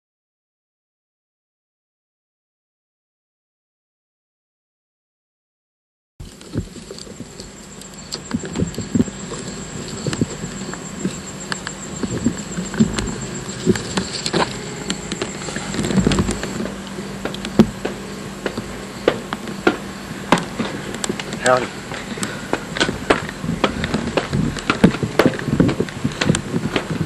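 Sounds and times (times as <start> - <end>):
steady low hum: 6.2 - 27.0
footsteps on steel steps: 12.0 - 27.0.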